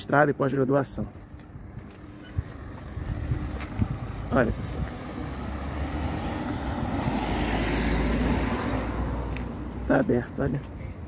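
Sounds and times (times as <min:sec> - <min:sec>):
car passing: 0:02.0 - 0:10.3.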